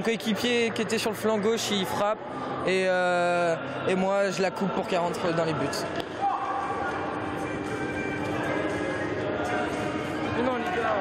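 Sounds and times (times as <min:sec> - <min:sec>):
distant voices in a hall: 0:00.0 - 0:11.0.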